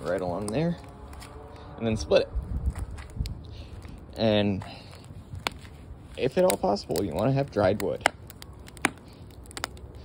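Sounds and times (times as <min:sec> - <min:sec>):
firewood crackling and popping: 0:00.0 - 0:10.0.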